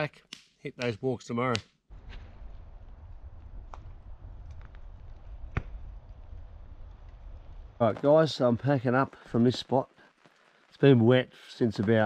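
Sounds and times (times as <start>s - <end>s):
wind rumble on microphone: 1.9s - 7.8s.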